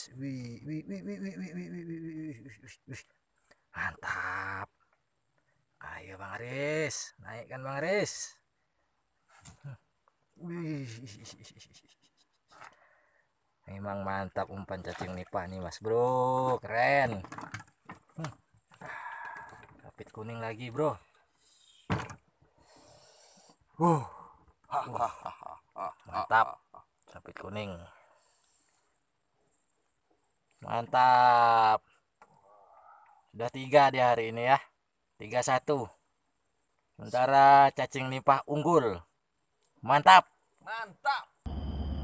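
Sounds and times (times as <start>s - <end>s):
man exclaiming: 0.3s - 2.7s
faint hiss: 21.2s - 22.0s, 22.6s - 24.4s, 28.0s - 29.2s.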